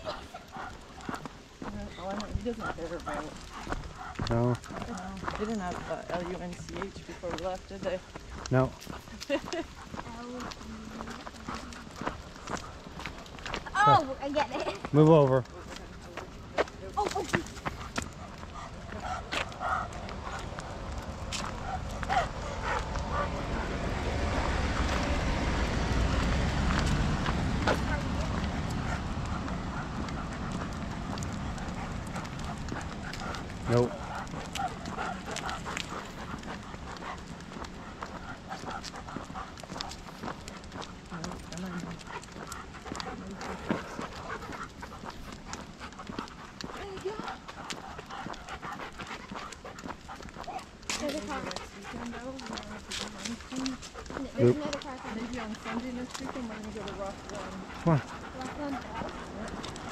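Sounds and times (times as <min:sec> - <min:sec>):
dogs panting: 0:00.0 - 0:59.9
footsteps on gravel: 0:00.0 - 0:59.9
low rumble: 0:14.8 - 0:59.9.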